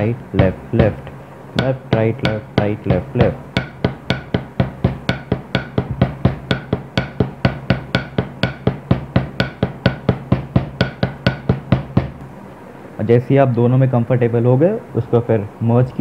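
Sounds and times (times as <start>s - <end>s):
drumsticks on rubber practice pad: 0.4s - 12.2s.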